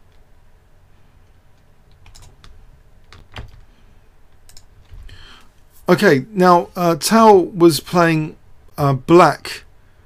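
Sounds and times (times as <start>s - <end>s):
low steady hum: 0.0s - 10.0s
computer keyboard keystrokes: 1.9s - 3.6s, 4.4s - 4.7s.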